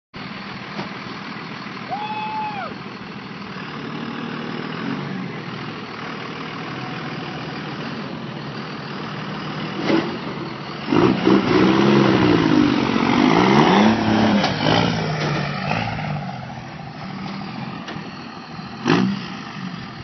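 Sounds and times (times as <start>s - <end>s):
diesel engine idling: 0.2s - 20.0s.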